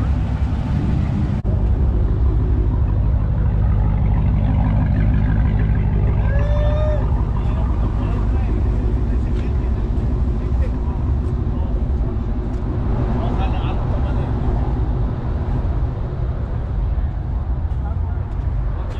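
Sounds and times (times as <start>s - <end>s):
people talking: 0.0s - 1.4s, 6.0s - 12.4s, 13.0s - 14.7s, 16.8s - 18.9s
car engines idling: 0.0s - 18.9s.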